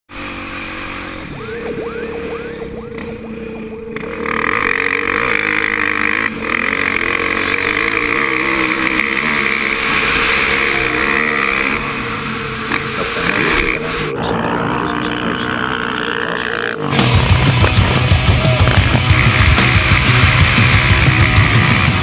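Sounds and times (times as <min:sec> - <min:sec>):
dirt bike engine running: 0:00.1 - 0:22.0.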